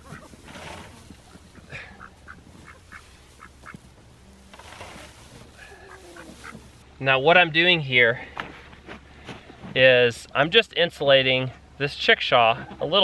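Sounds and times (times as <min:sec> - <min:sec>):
poultry calls: 0:00.0 - 0:06.8
straw rustling: 0:00.0 - 0:06.9.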